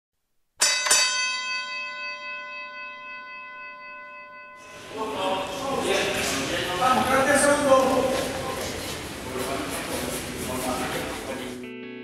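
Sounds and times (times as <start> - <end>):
metal bell ringing: 0.6 - 6.5.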